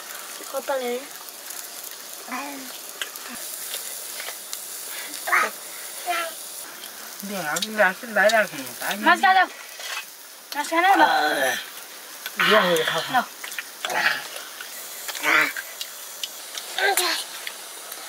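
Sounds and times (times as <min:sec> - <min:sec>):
cooking fire crackling: 0:00.0 - 0:18.0
women and children talking: 0:00.4 - 0:01.1, 0:05.1 - 0:06.5.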